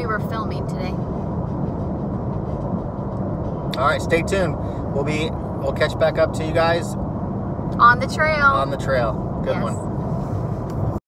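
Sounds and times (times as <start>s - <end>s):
car cabin road and engine rumble: 0.0s - 11.0s.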